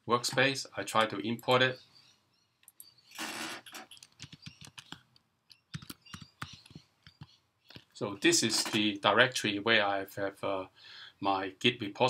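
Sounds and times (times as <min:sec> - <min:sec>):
typing on computer keyboard: 0:03.7 - 0:07.3.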